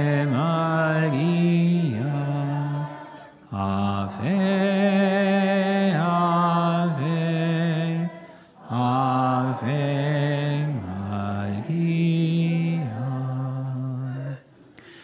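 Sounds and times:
man singing a slow hymn: 0:00.0 - 0:14.5.

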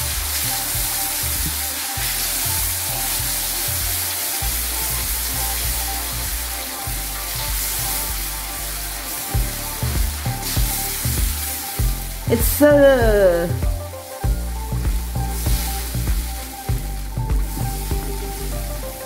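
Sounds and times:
paste sizzling in a pan: 0:00.0 - 0:19.0.

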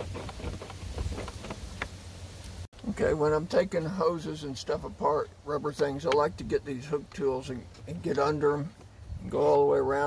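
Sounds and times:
wind rumble on microphone: 0:08.9 - 0:09.6.

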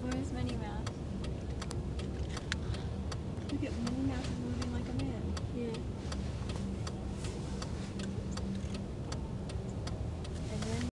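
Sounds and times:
low street rumble: 0:00.0 - 0:10.9.

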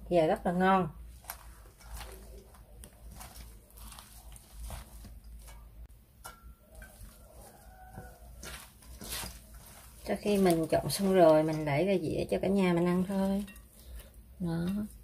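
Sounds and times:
food crinkling and squishing: 0:00.2 - 0:15.0.

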